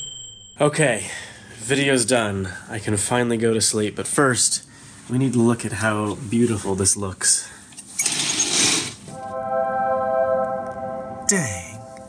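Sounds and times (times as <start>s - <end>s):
held chord of background music: 9.1s - 12.0s.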